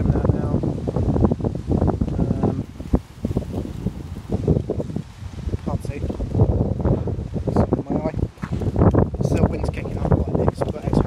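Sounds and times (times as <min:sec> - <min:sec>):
gusty wind buffeting microphone: 0:00.0 - 0:11.0.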